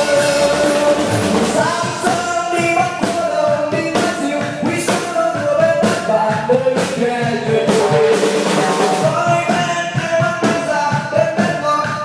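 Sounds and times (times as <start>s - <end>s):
electric and acoustic guitars: 0.0s - 9.6s
drum kit beat: 0.0s - 12.0s
person singing: 0.0s - 12.0s.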